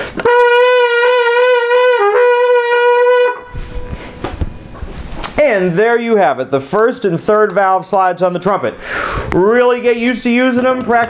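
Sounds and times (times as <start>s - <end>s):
trumpet long note with vibrato: 0.2s - 4.0s.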